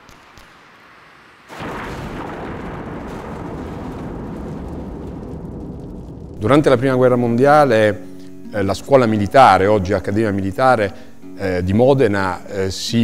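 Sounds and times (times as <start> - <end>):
faint crackle: 0.0 - 9.0
loud blast with low rumble: 1.5 - 8.0.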